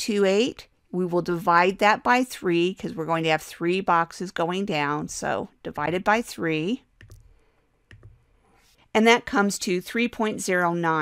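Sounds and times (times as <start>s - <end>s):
computer mouse clicking: 7.0s - 8.3s.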